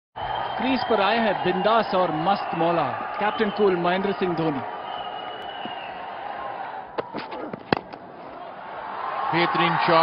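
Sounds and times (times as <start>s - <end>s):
stadium crowd hum: 0.2s - 10.0s
cricket bat striking ball: 6.9s - 8.1s.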